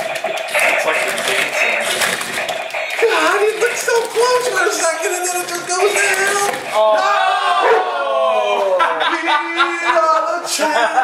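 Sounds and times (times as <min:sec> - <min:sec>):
plastic arms clattering: 0:00.0 - 0:06.8.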